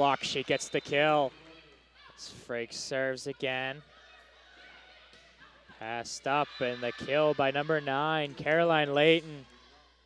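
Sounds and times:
sports hall background: 0.0s - 10.0s.

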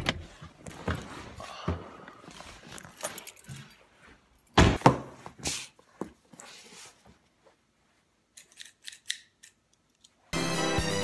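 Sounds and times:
background music with steady beat: 10.4s - 11.0s.

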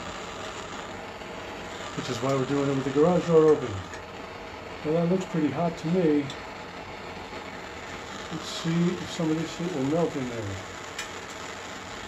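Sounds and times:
propane torch hissing: 0.0s - 12.0s.

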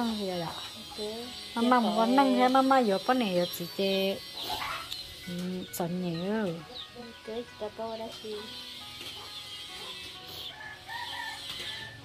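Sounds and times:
chickens clucking and chirping: 1.8s - 12.0s.

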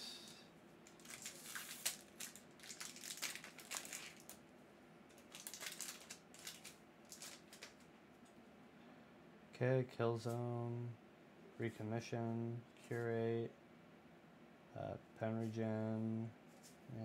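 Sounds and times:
foil pack tearing open: 0.9s - 4.4s, 5.2s - 7.8s
foil wrapper crinkling: 0.9s - 4.4s, 5.1s - 7.9s.

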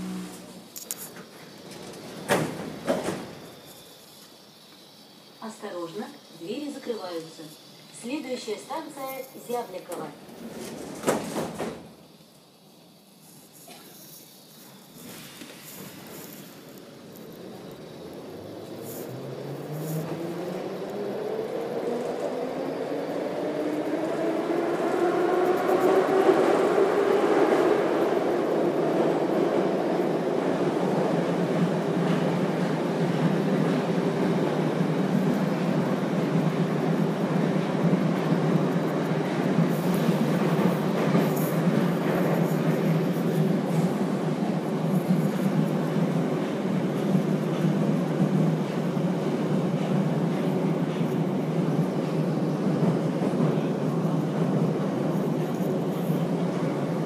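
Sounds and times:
train traction motor whine: 0.0s - 8.0s, 14.2s - 27.2s
train running noise: 0.0s - 57.0s.

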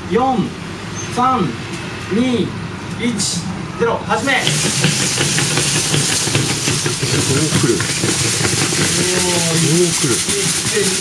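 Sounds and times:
fast irregular rattle: 4.4s - 11.0s.

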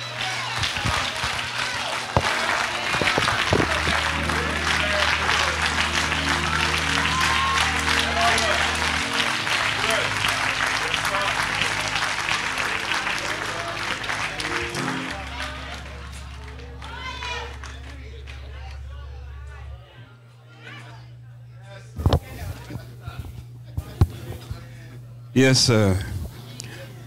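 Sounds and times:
crowd applauding: 0.0s - 19.9s
keyboard sustained chords: 0.0s - 20.4s
voices in crowd: 0.0s - 27.0s.

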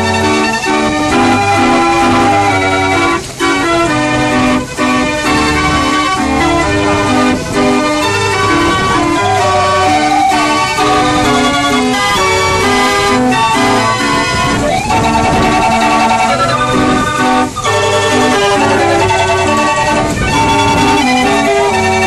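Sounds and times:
mechanical street organ playing: 0.0s - 22.0s.

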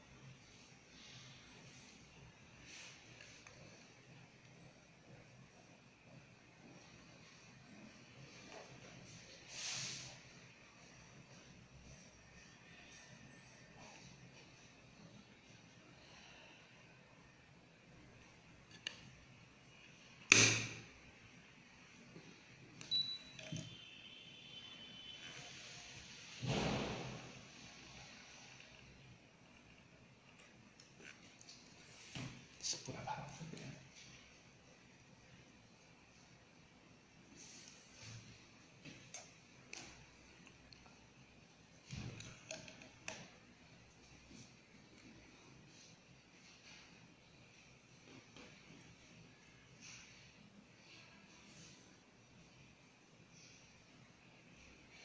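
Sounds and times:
short high beep: 22.9s - 25.2s
brief noisy arc burst: 26.3s - 27.4s.

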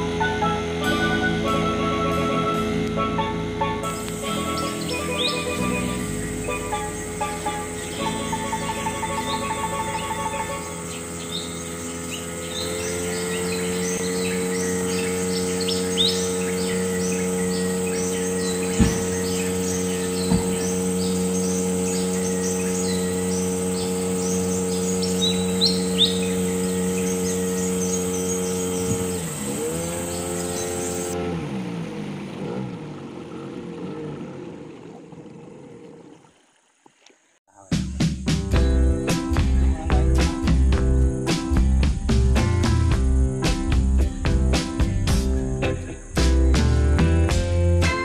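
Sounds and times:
birds chirping: 0.0s - 31.2s, 38.4s - 48.0s
boat engine running: 0.0s - 48.0s.

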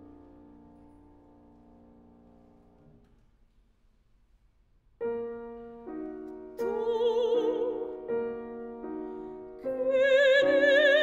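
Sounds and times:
piano chords: 5.0s - 11.0s
operatic soprano singing: 6.6s - 8.2s, 9.6s - 11.0s.

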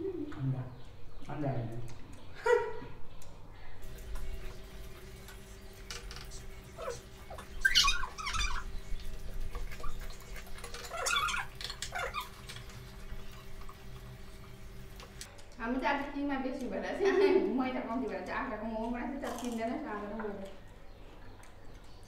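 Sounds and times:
people slurping and eating: 3.8s - 15.3s.

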